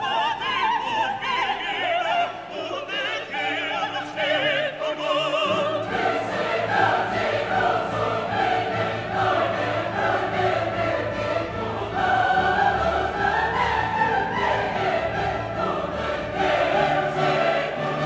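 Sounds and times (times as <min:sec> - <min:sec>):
choir singing slow lines: 0:00.0 - 0:18.0.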